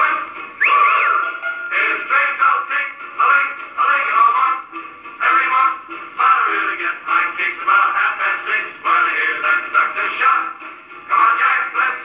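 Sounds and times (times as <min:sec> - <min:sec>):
gramophone record playing band music: 0:00.0 - 0:12.0
long held tone: 0:00.6 - 0:01.6.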